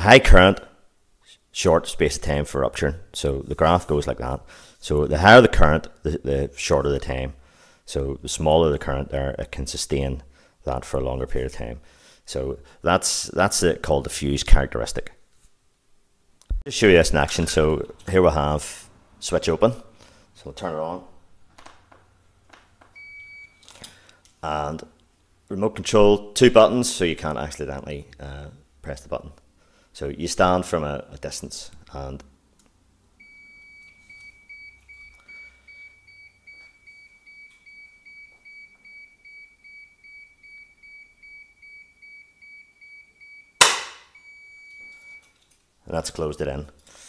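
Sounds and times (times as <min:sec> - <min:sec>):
high-pitched warning beeps: 0:33.2 - 0:43.6, 0:44.2 - 0:45.3
steady beep: 0:33.2 - 0:45.3
loud bang: 0:43.6 - 0:44.1.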